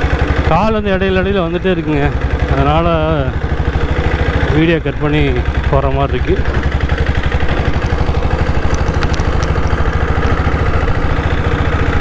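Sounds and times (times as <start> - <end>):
motorcycle diesel engine running: 0.0 - 12.0.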